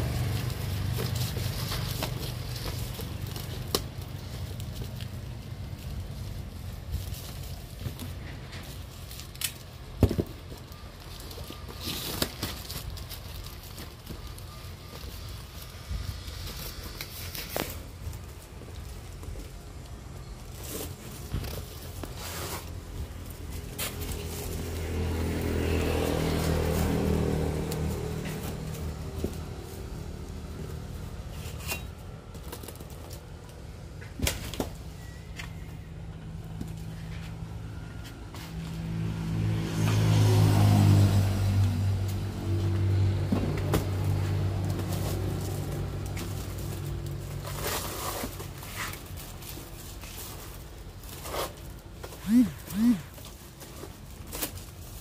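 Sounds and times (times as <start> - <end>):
motor vehicle passing: 0.0 - 7.6, 22.2 - 31.8, 36.7 - 49.0, 51.2 - 53.9
rope and cardboard rustling: 0.0 - 55.0.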